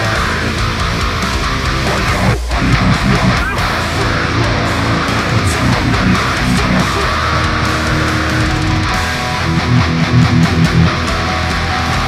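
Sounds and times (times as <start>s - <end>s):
distorted electric guitar riff: 0.0s - 12.0s.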